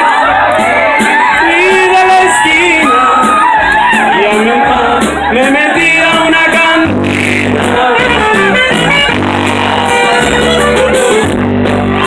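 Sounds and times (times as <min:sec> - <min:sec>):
dance band with saxophone: 0:00.0 - 0:12.0.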